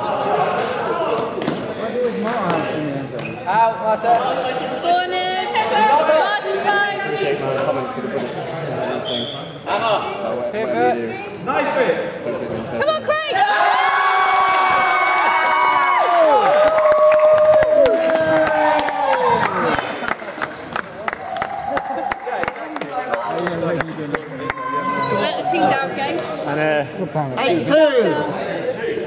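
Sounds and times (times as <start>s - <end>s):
players cheering and whooping: 13.3s - 20.0s, 20.8s - 22.7s.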